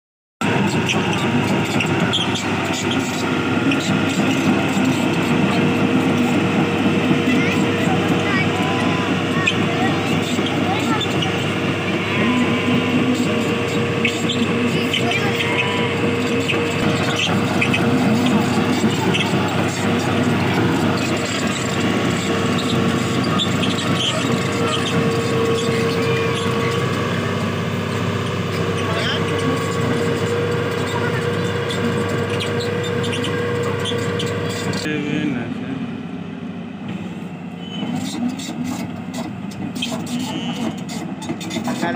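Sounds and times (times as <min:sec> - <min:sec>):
voices chattering: 0:00.4 - 0:36.2, 0:37.6 - 0:41.9
excavator diesel engine running: 0:00.4 - 0:41.9.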